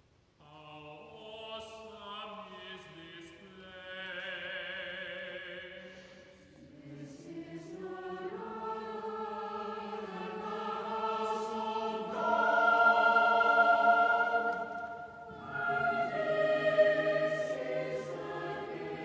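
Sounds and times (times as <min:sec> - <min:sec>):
choir singing sustained chords: 0:00.4 - 0:19.0.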